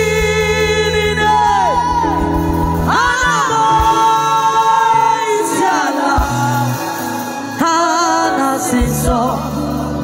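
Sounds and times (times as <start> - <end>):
live band with bass guitar: 0.0 - 10.0
woman singing into microphone: 0.0 - 10.0.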